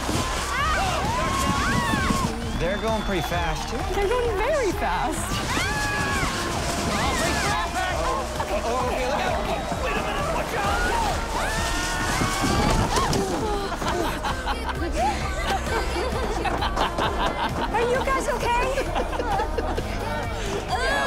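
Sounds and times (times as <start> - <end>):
background music: 0.0 - 21.0
crowd cheering and shouting: 0.0 - 21.0.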